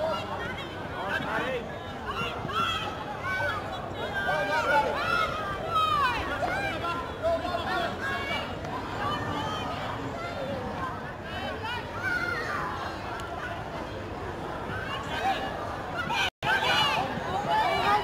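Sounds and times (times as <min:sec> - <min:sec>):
players and spectators shouting: 0:00.0 - 0:10.8, 0:14.8 - 0:18.0.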